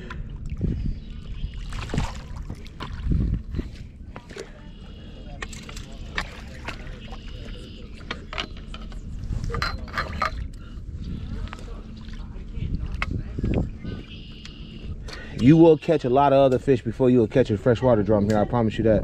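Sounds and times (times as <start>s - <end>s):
water splashing and sloshing: 0.0s - 16.0s.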